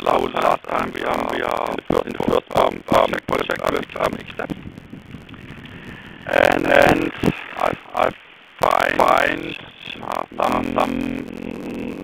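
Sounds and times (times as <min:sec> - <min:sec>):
person talking over phone: 0:00.0 - 0:04.6, 0:06.2 - 0:12.0
phone line hiss: 0:00.0 - 0:12.0.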